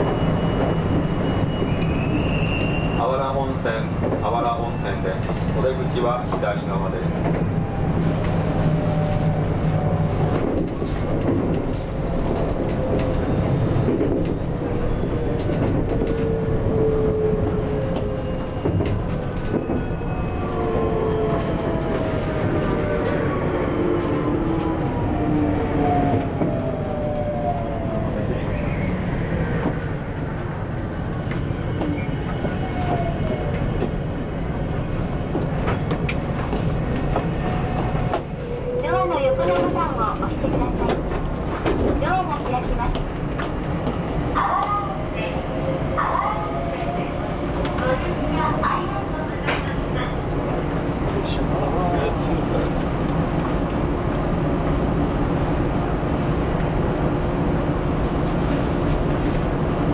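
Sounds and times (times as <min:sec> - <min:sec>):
wheel-on-rail rumble: 0:02.7 - 0:59.9.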